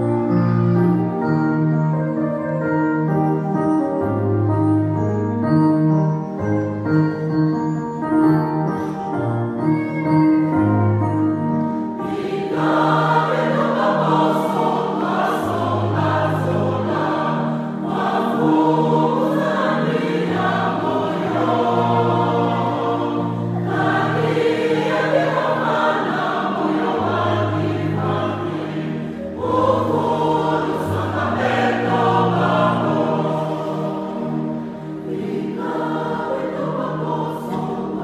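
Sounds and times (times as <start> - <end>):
choir singing: 11.8 - 38.0.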